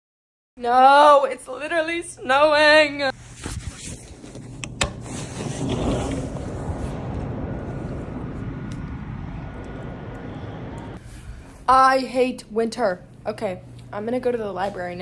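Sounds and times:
city traffic hum: 4.1s - 11.7s.

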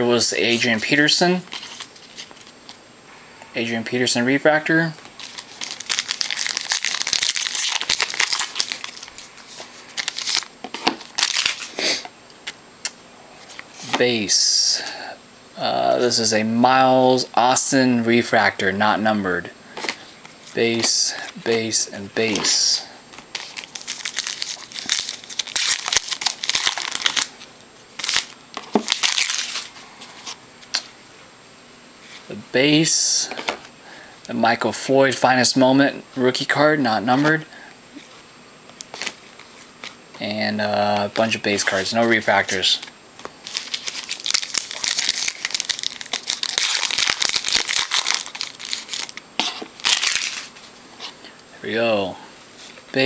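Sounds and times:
foil wrapper crinkling and tearing: 5.1s - 11.7s, 23.2s - 30.8s, 40.9s - 50.6s.

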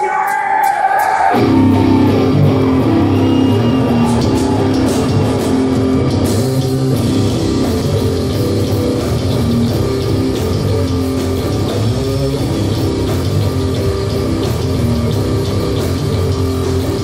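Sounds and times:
drum kit: 0.0s - 17.0s
distorted electric guitar riff: 1.2s - 17.0s
bass guitar: 1.4s - 17.0s.

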